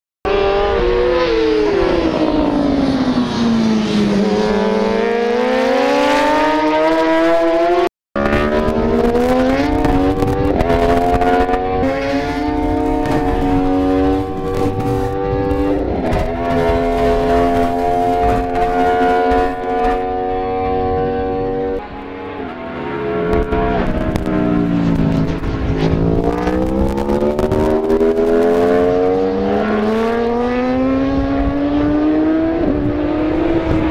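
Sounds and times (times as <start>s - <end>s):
racing motorcycle engines: 0.3s - 33.9s.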